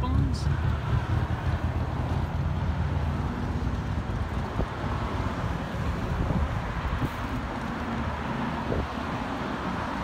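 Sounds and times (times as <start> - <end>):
motorcycle engine idling: 0.0 - 4.5.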